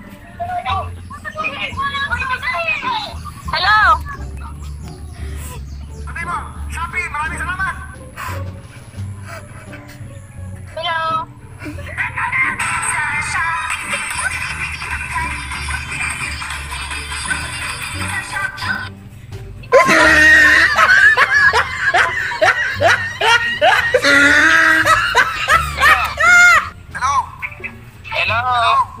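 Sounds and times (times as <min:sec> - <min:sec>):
young woman laughing: 0:11.6 - 0:12.9, 0:19.7 - 0:26.7
person giggling: 0:19.7 - 0:26.6.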